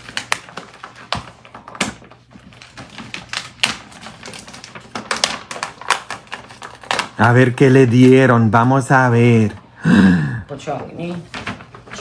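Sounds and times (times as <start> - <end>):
paper bag rustling and crinkling: 0.0 - 8.1, 10.6 - 12.0.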